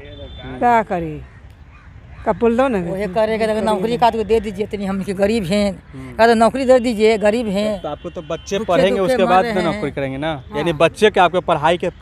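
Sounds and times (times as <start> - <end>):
woman speaking: 2.3 - 7.6, 8.7 - 9.9, 10.5 - 10.9.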